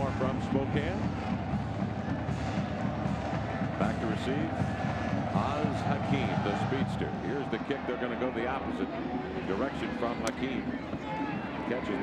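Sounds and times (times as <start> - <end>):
drums playing: 0.0 - 7.4
stadium crowd noise: 0.0 - 12.0.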